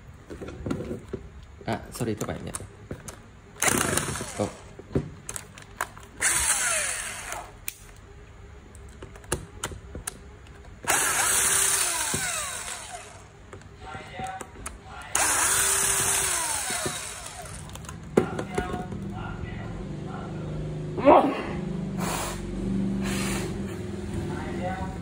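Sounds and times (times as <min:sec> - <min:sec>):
electric screwdriver running: 0:03.6 - 0:04.8, 0:06.2 - 0:07.5, 0:10.8 - 0:13.3, 0:15.2 - 0:17.8.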